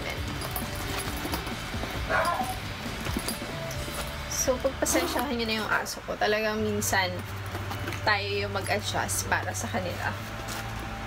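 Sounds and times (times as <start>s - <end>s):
dog barking: 2.0s - 2.6s.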